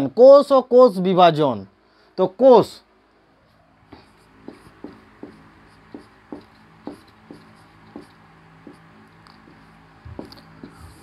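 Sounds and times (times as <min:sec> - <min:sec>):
marker pen on whiteboard: 0:03.5 - 0:11.0.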